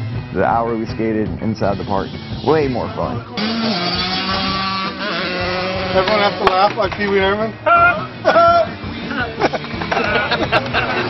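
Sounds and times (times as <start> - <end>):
dirt bike engine running: 2.0 - 7.1.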